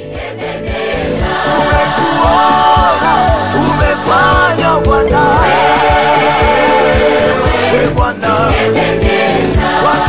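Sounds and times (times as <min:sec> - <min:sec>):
voices singing gospel song: 0:00.0 - 0:10.0
steady beat: 0:00.2 - 0:10.0.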